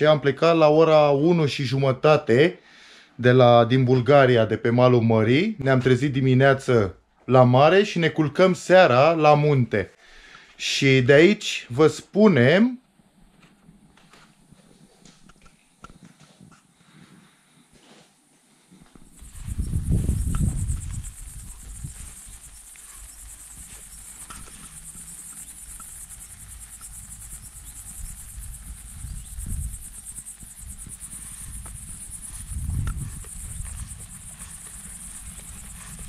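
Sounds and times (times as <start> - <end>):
insects chirring: 7.5 - 36.0
wind buffeting microphone: 19.1 - 36.0.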